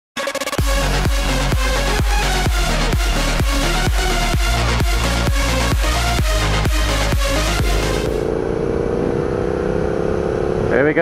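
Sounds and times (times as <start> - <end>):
motorcycle engine cruising: 0.6 - 11.0.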